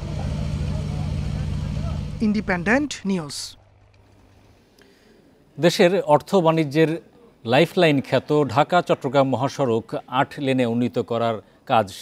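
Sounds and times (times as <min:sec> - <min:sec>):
engine running steadily: 0:00.0 - 0:02.8.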